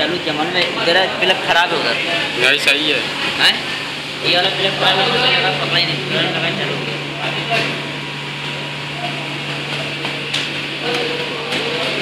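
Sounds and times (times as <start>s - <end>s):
faint voices talking: 0.0s - 12.0s.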